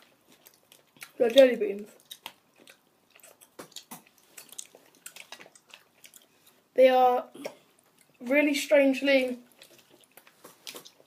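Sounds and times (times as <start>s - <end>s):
chewing mouth clicks: 0.2s - 6.6s, 9.5s - 11.0s.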